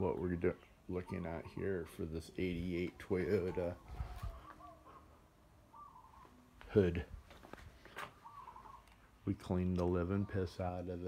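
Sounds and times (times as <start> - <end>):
wavering bird call: 2.9 - 6.5, 8.0 - 9.1.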